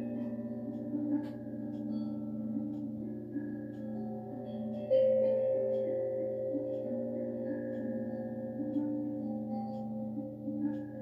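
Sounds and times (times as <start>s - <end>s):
singing bowls ringing: 0.0s - 11.0s.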